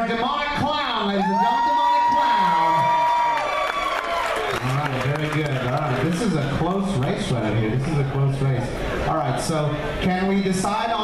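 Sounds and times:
audience cheering: 1.0 - 6.9.

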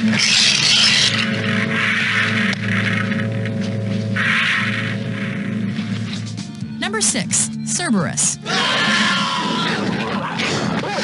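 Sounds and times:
low drone: 0.0 - 6.7.

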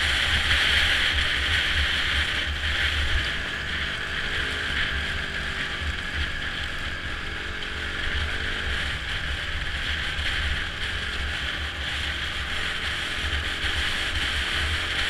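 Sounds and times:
muffled motorcycle engine: 0.0 - 15.0.

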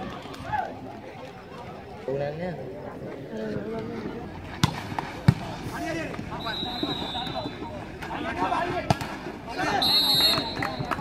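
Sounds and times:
spectators' voices: 0.0 - 11.0
high steady whistle tone: 6.3 - 7.7, 9.6 - 11.0.

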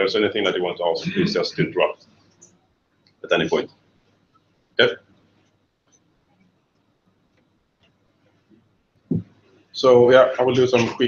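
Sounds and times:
man saying ok: 10.4 - 11.0.

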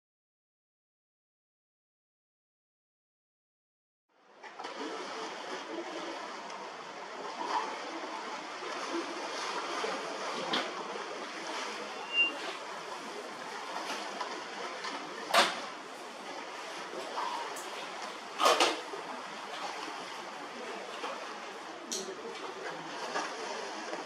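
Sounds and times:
wind: 4.1 - 24.0
sea water rushing: 4.2 - 24.0.

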